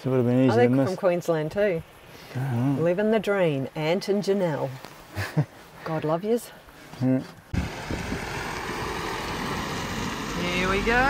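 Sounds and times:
diesel van engine running: 0:07.5 - 0:11.0.

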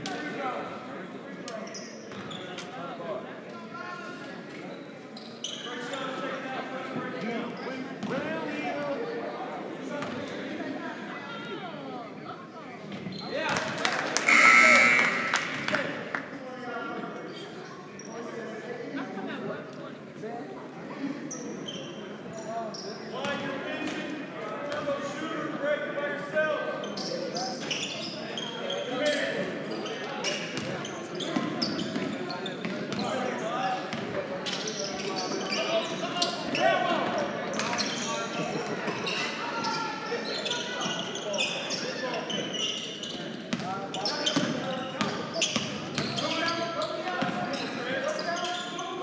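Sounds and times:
shouting players and spectators: 0:13.3 - 0:16.4.

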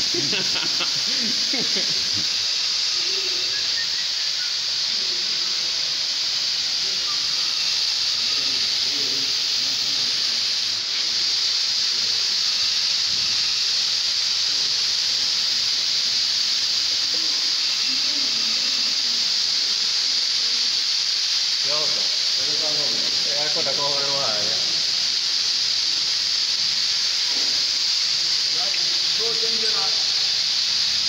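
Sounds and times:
fire extinguisher gas hissing: 0:00.0 - 0:31.0.

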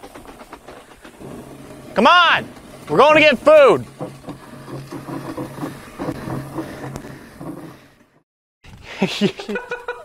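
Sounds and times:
light footsteps: 0:00.0 - 0:08.2
mannequin dragged over grass: 0:00.8 - 0:08.2.

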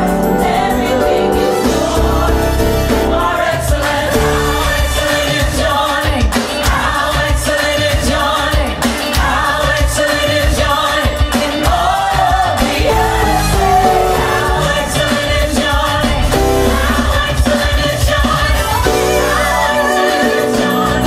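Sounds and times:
gospel song with choir and band: 0:00.0 - 0:21.0
synthesizer keyboard: 0:12.7 - 0:17.9.

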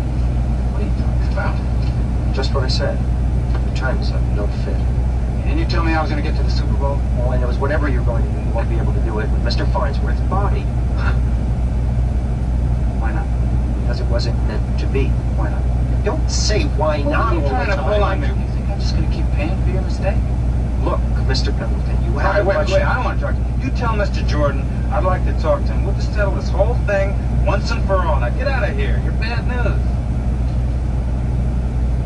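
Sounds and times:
film dialogue from small speaker: 0:00.0 - 0:32.0
low engine hum: 0:00.0 - 0:32.0.

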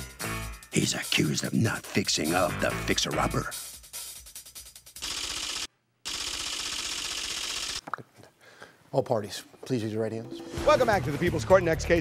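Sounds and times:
typewriter-style clicking: 0:05.0 - 0:07.8.

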